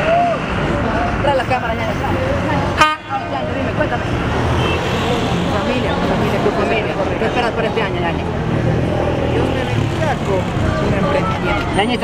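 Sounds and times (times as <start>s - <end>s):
street traffic rumble: 0.0s - 12.0s
people talking: 0.6s - 4.3s, 5.0s - 12.0s.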